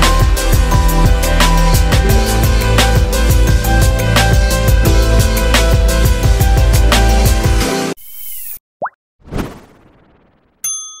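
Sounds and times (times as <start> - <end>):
background music: 0.0 - 8.0
short rising pop: 8.8 - 10.4
bright ding: 10.6 - 11.0.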